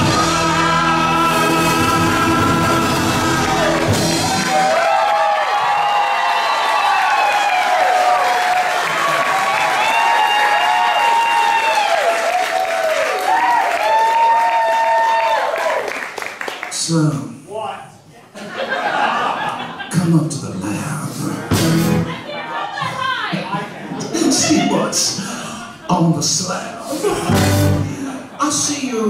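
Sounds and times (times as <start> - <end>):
rock band and singer: 0.0 - 4.8, 21.2 - 22.2, 27.1 - 28.3
audience cheering and whooping: 0.0 - 16.2.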